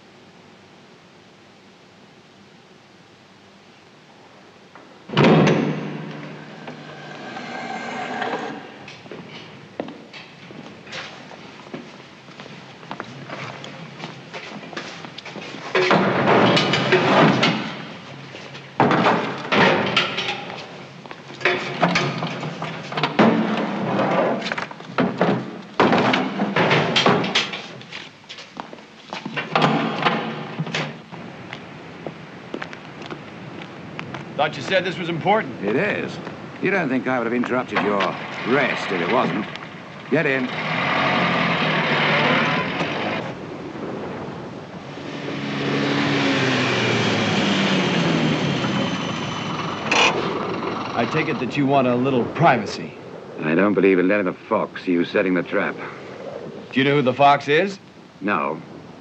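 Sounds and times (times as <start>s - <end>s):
knocks and clatters: 5.1s - 10.4s, 15.7s - 17.9s, 21.4s - 27.9s.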